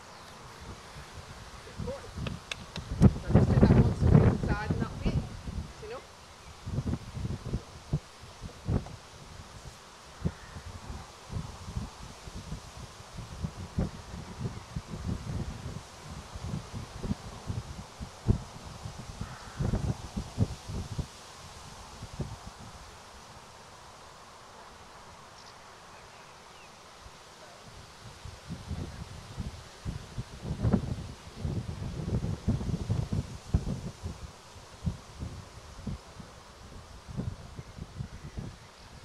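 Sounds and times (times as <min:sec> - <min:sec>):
leaves rustling in wind: 0:00.0 - 0:39.0.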